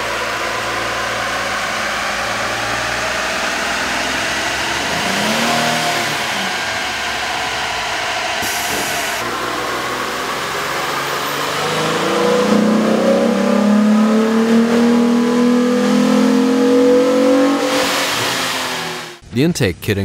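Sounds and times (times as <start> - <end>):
engine accelerating under load: 0.0 - 19.2.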